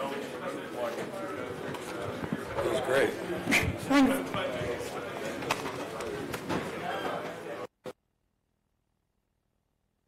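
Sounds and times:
indistinct chatter of people: 0.0s - 7.7s.

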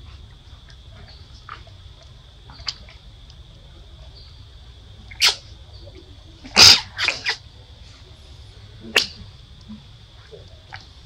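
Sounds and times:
macaque calls: 5.1s - 5.5s, 6.5s - 7.4s.

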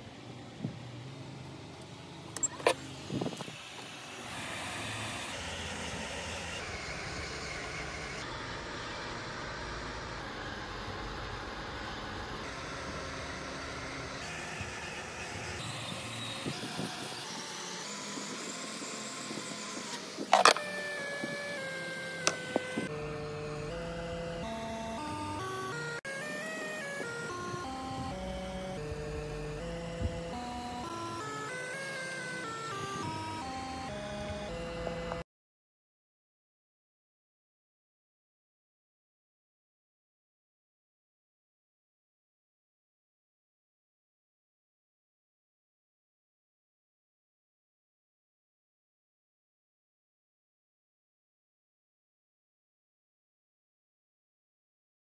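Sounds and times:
hot air station blowing: 1.7s - 35.0s.

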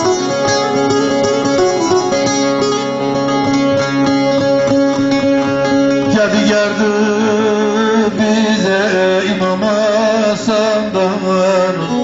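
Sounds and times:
plucked long-necked lute melody: 0.0s - 12.0s.

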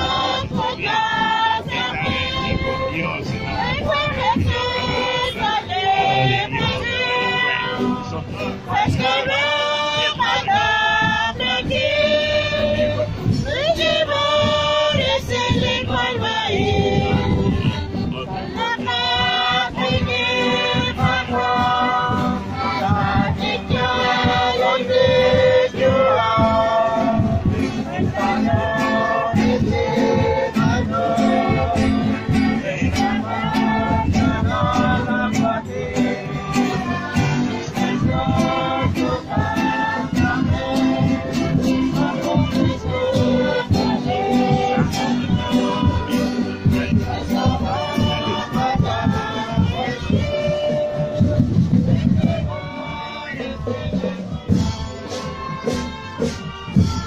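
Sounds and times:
strummed acoustic guitars: 0.0s - 57.0s
women singing a hymn: 0.0s - 57.0s.

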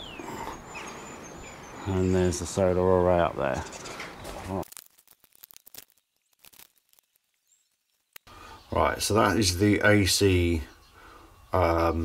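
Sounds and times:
faint clicks and rustles: 3.7s - 8.3s.

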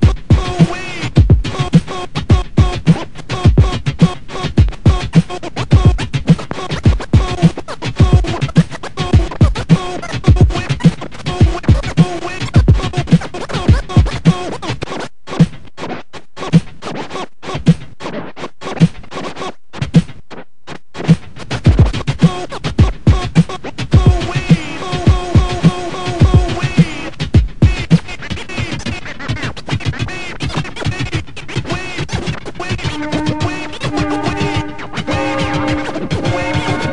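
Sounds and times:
hip-hop drum beat: 0.0s - 20.4s, 21.0s - 36.9s
turntable scratching: 0.0s - 36.9s.

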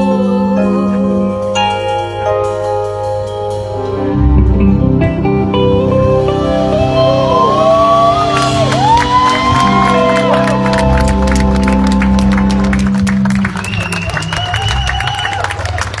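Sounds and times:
live band playing: 0.0s - 16.0s
cheers: 6.7s - 16.0s
clapping: 8.4s - 16.0s.

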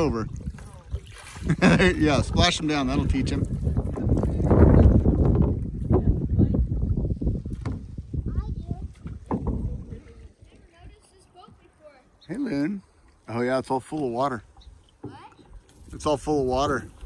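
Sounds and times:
paddles splashing in water: 0.0s - 17.0s.

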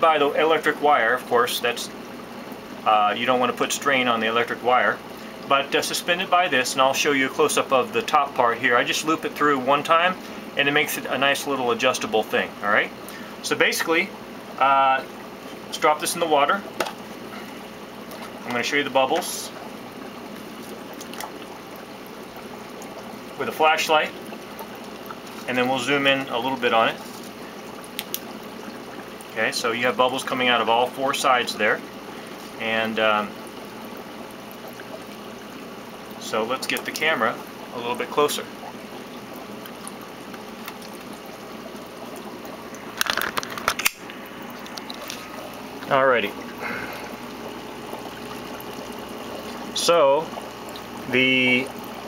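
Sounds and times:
water trickling and bubbling: 0.0s - 52.0s.

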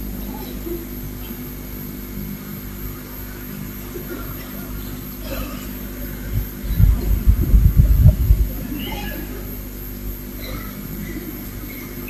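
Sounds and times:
low hum of held tones: 0.0s - 12.0s.

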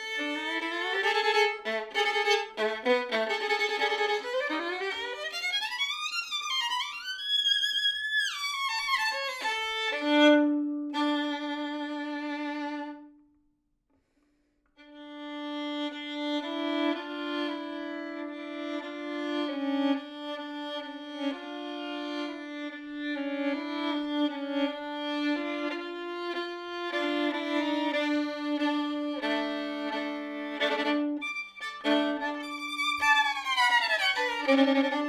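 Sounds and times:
solo violin bowed double stops: 0.0s - 13.2s, 14.8s - 35.0s.

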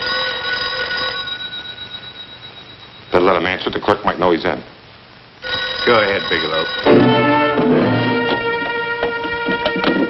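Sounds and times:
telephone bell ringing: 0.0s - 3.4s, 5.4s - 9.2s.

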